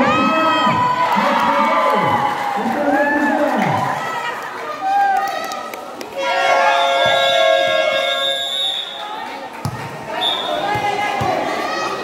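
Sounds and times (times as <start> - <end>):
spectators' voices: 0.0 - 12.0
basketball bouncing on concrete: 9.6 - 11.5.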